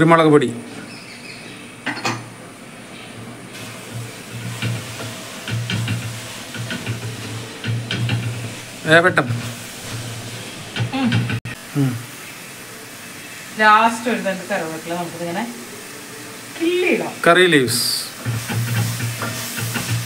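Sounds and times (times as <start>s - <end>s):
low sizzle: 0.0s - 20.0s
short vocal sound: 11.7s - 12.1s.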